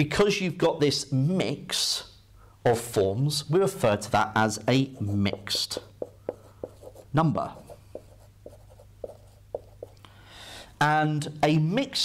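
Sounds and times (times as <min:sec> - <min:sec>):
low steady hum: 0:02.2 - 0:10.8
marker writing on whiteboard: 0:04.6 - 0:10.0.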